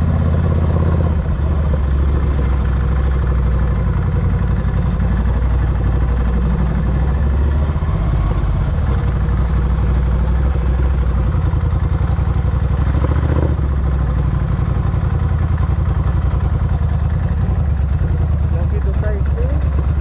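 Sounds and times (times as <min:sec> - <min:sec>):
motorcycle engine running: 0:00.0 - 0:20.0.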